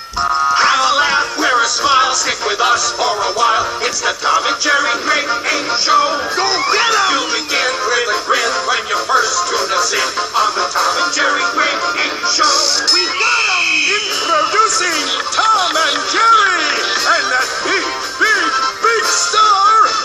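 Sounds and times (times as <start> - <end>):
cartoon theme song with singing: 0.0 - 20.0.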